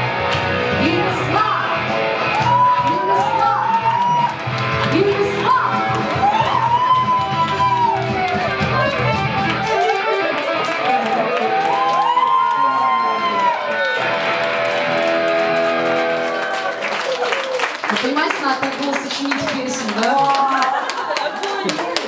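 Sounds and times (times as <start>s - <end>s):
live band playing: 0.0s - 16.8s
woman's voice: 0.8s - 1.8s, 4.9s - 5.9s, 17.9s - 20.9s.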